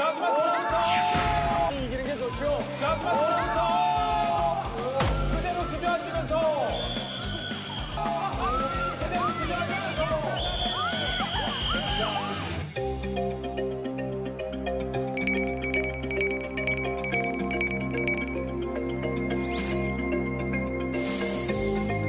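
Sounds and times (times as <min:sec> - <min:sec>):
crowd shouting and cheering: 0:00.0 - 0:12.7
background music: 0:00.0 - 0:22.0.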